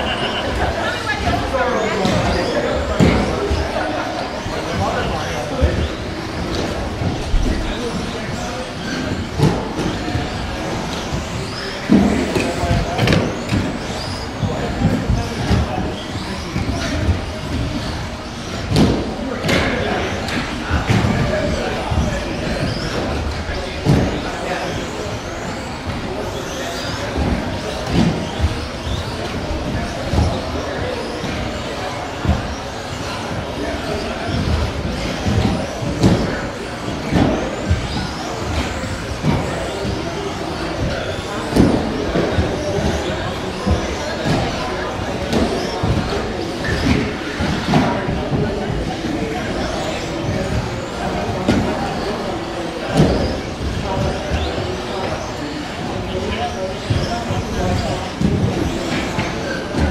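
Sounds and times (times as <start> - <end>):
rc car motors whining: 0.0 - 47.7.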